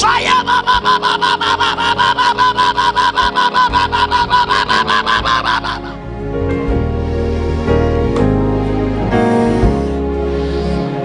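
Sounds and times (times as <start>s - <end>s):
soft keyboard music: 0.0s - 11.0s.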